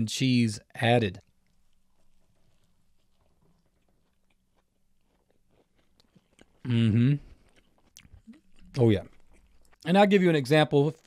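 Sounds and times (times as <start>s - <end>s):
man chewing food: 1.2s - 9.9s.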